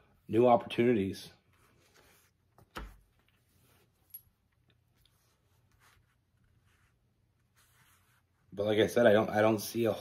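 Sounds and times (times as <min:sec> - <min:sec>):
cards rubbing on a table: 0:05.1 - 0:08.5.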